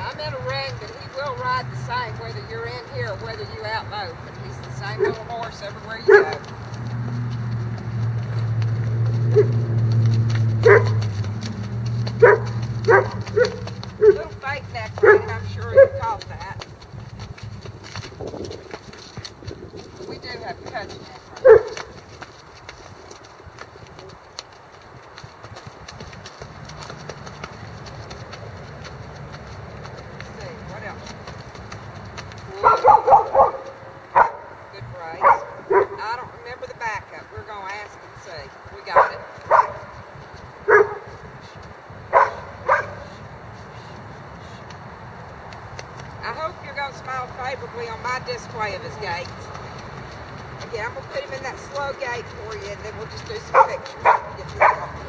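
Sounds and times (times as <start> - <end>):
dog barking: 6.1 - 6.4, 9.3 - 9.6, 10.6 - 11.1, 12.2 - 14.3, 15.0 - 16.2, 21.4 - 21.9, 32.6 - 34.6, 35.2 - 36.0, 39.0 - 39.9, 40.7 - 41.1, 42.1 - 43.1, 53.5 - 55.0.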